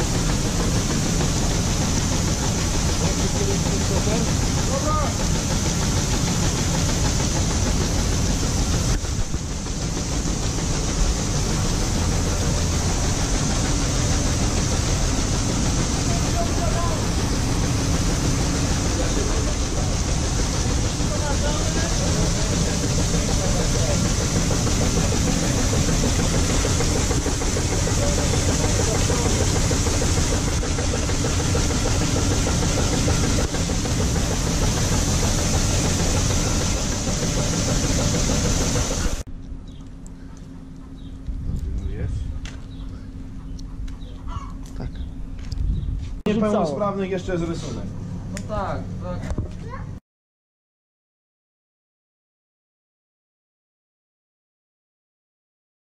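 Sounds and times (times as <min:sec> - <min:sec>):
grain pouring into hopper: 0:00.0 - 0:39.2
tractor engine running: 0:00.0 - 0:41.5.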